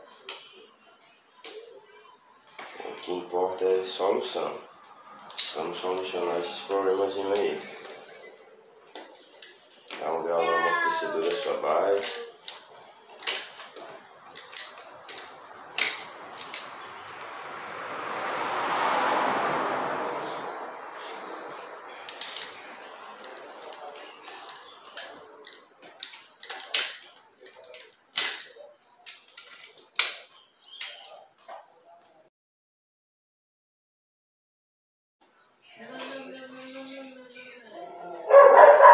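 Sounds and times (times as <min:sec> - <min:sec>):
wrench clinking on metal: 0:05.2 - 0:06.2, 0:06.8 - 0:08.4, 0:10.6 - 0:17.5, 0:22.1 - 0:30.2
soft rushing sound: 0:13.9 - 0:23.9.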